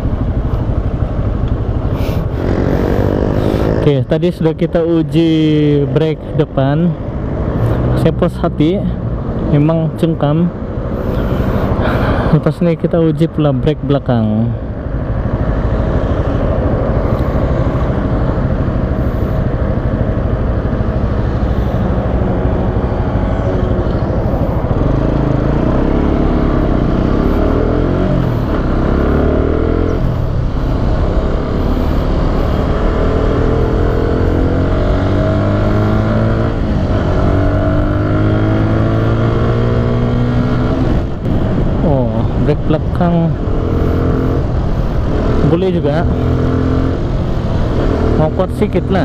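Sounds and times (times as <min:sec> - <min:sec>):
motorcycle engine accelerating: 0:00.0 - 0:49.0.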